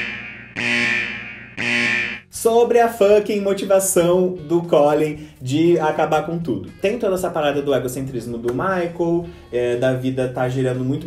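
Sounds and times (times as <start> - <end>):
buzzing alarm tone: 0.0 - 2.3.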